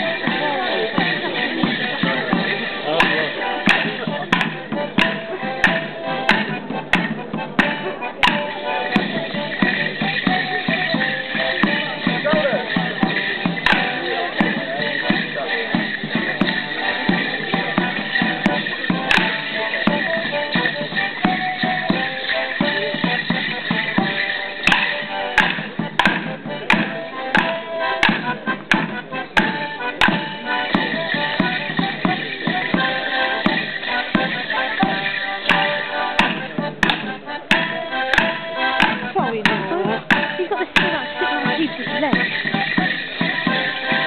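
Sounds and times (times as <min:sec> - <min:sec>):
drum: 0:00.0 - 0:44.0
squeezebox dance tune: 0:08.4 - 0:25.8.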